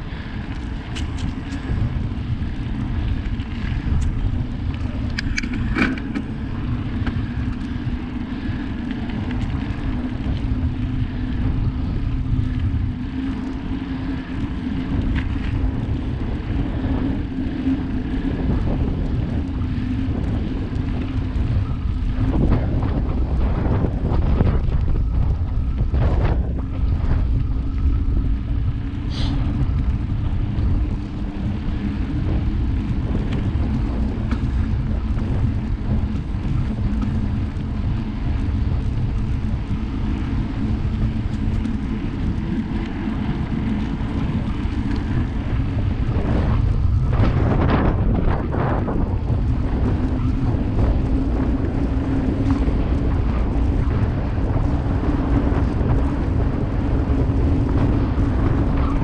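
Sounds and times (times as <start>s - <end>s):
knobby tyres humming on asphalt: 0.0s - 59.0s
wind rushing over microphone: 0.0s - 59.0s.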